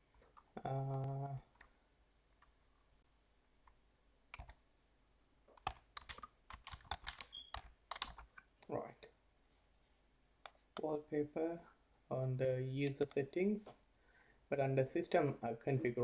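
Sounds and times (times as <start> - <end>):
typing on computer keyboard: 4.4 - 4.6, 5.6 - 8.3.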